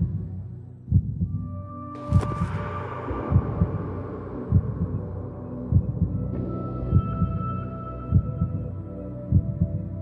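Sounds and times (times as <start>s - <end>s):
dramatic underscore music: 0.0s - 10.0s.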